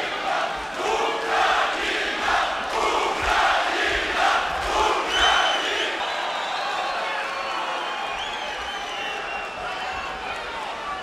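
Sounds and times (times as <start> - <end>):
crowd chanting: 0.0 - 6.6.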